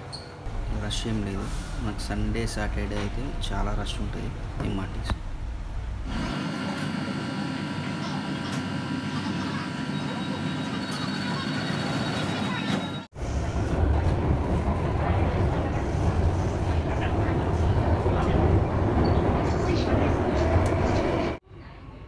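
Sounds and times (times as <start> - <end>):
train rumbling: 0.5 - 21.4.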